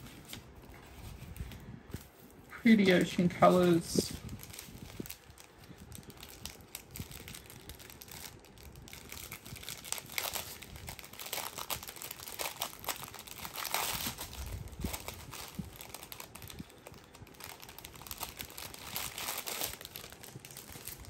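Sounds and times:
plastic packaging crinkling: 0:00.0 - 0:21.0.

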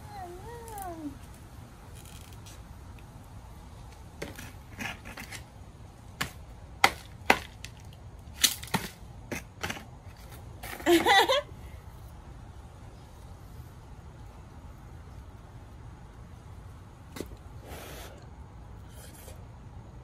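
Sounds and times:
bamboo cracking and snapping: 0:06.8 - 0:08.9.

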